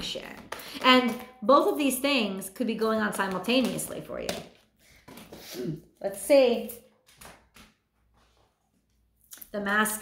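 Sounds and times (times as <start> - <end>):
cards rustling and tapping: 3.1 - 5.5, 7.0 - 8.0.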